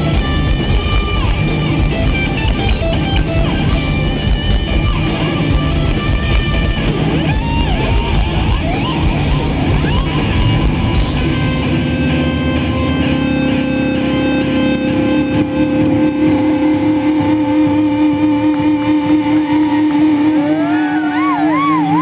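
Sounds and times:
held electric guitar notes: 0:00.0 - 0:22.0
live rock band: 0:00.0 - 0:22.0.

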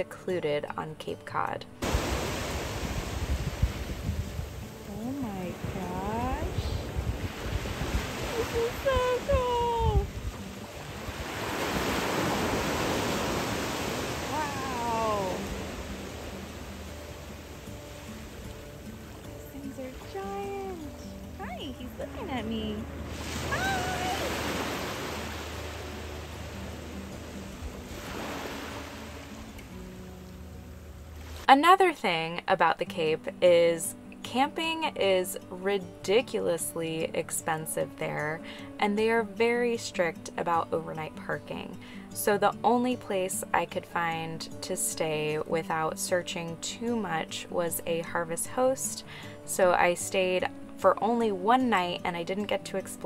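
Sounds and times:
soft background music: 0:00.0 - 0:53.0
wind gusting on microphone: 0:01.8 - 0:17.8
small waves washing onto beach: 0:01.8 - 0:31.5
calm sea at shore: 0:01.8 - 0:32.1.

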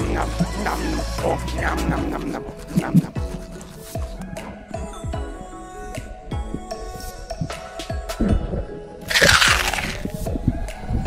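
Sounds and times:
background music: 0:00.0 - 0:11.0
crackling rushing noise burst: 0:09.1 - 0:10.1.

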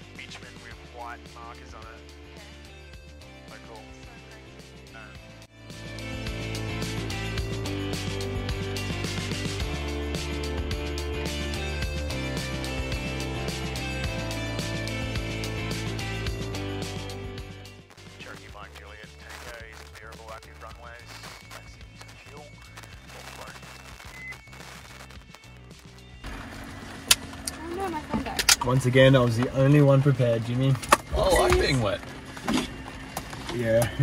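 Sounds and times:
music with steady beat: 0:00.0 - 0:26.3
loud steady hum: 0:20.9 - 0:33.4.

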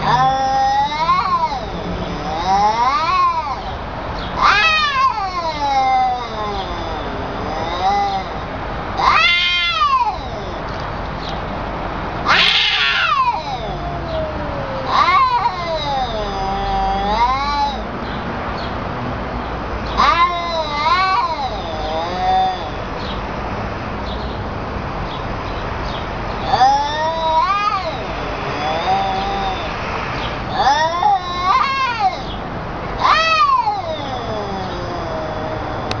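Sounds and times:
cats yowling: 0:00.0 - 0:11.0, 0:12.2 - 0:18.2, 0:19.8 - 0:23.2, 0:26.3 - 0:36.0.

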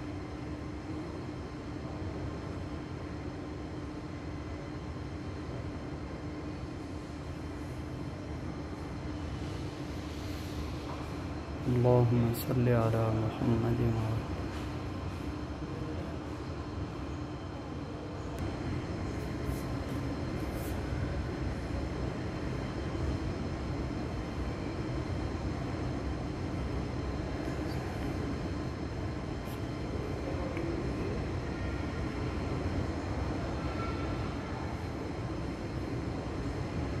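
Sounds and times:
shopping mall rumbling background: 0:00.0 - 0:37.0.

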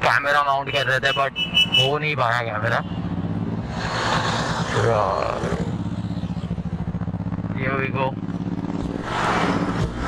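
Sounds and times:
passing traffic: 0:00.0 - 0:10.0
motorcycle engine idling: 0:05.4 - 0:07.6.

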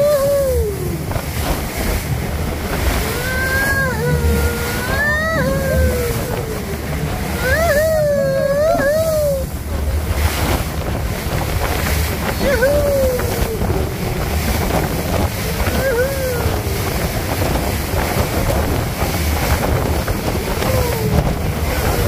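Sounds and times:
boat engine low rumble: 0:00.0 - 0:22.0
wind buffeting microphone: 0:00.0 - 0:22.0.

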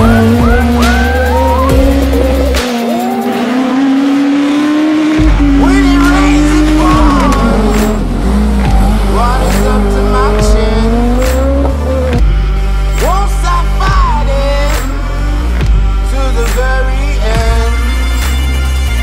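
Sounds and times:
music with steady beat: 0:00.0 - 0:03.6, 0:05.0 - 0:19.0
rally car engine revving: 0:00.0 - 0:18.3.

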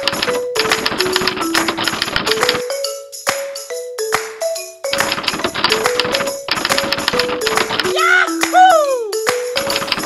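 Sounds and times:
typewriter clicking: 0:00.0 - 0:02.7, 0:04.9 - 0:07.9, 0:09.6 - 0:10.0
light background music: 0:00.0 - 0:10.0.

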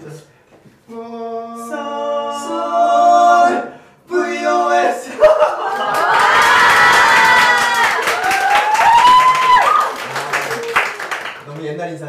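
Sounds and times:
crowd cheering and shouting: 0:05.2 - 0:10.7.

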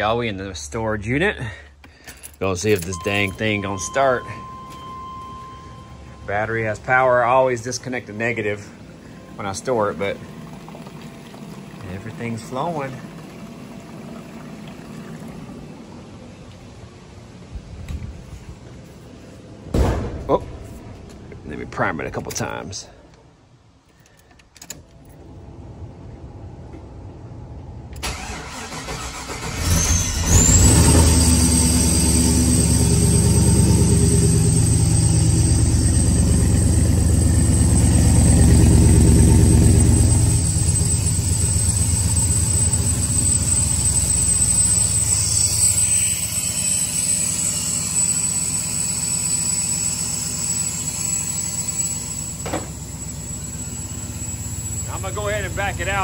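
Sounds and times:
car engine cranking and idling: 0:00.0 - 0:56.0
steady high whine: 0:02.1 - 0:13.8, 0:18.3 - 0:23.3, 0:31.3 - 0:56.0.

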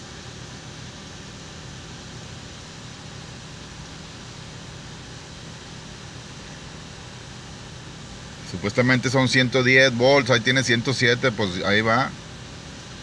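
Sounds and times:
car engine and fans humming: 0:00.0 - 0:13.0.

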